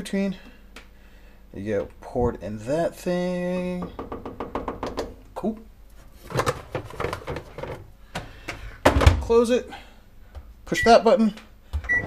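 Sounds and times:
plastic bottle knocking and clattering: 6.3 - 7.8.

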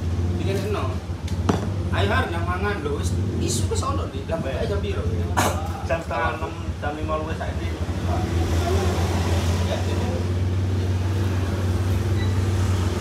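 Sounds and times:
traffic engine hum: 0.0 - 13.0.

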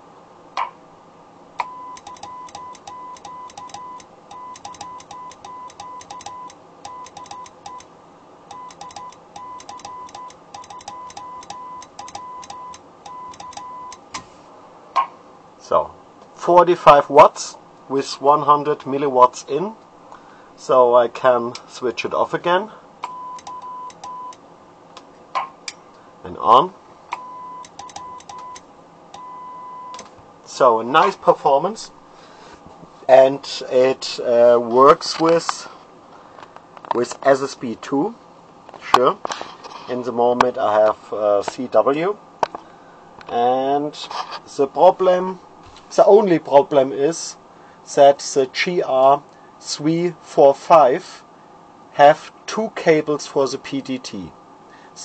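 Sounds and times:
morse code tone beeping: 1.6 - 7.9, 8.5 - 14.0, 23.1 - 24.4, 27.2 - 28.6, 29.2 - 30.0
sharp keying clicks: 2.0 - 7.9, 8.5 - 14.2, 23.0 - 24.4, 27.6 - 29.2.

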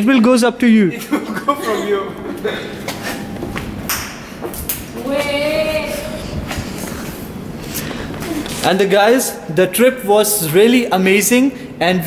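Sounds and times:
shuffling: 4.4 - 8.9
indistinct voices: 4.7 - 9.8.

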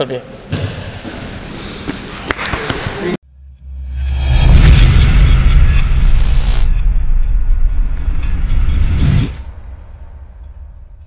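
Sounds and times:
deep bass rumble: 3.2 - 10.9.

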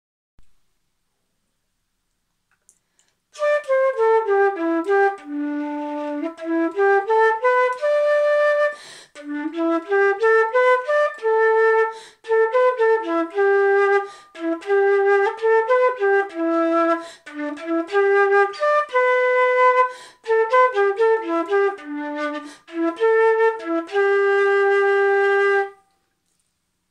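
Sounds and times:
solo flute melody: 3.3 - 26.0.

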